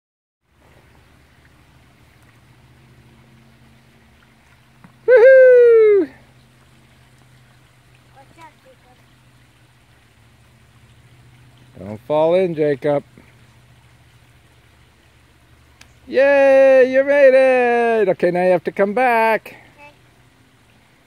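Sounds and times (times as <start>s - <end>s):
creek trickling: 0.4s - 21.0s
high voice wordless cry: 5.1s - 6.2s.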